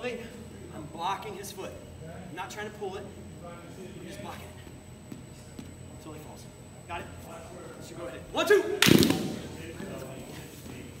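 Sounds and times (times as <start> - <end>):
faint voices in echoing gym: 0.0 - 11.0.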